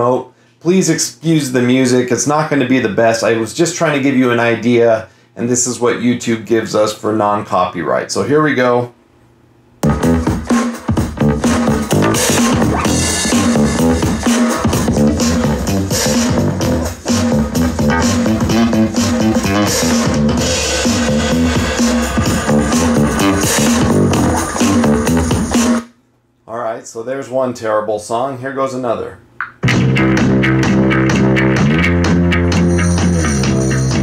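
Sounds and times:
music through speaker: 9.8s - 25.9s, 29.6s - 34.0s.

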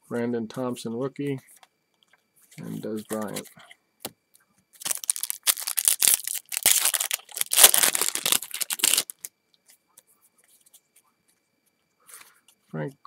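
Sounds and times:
foil wrapper tearing and crinkling: 4.8s - 9.3s.

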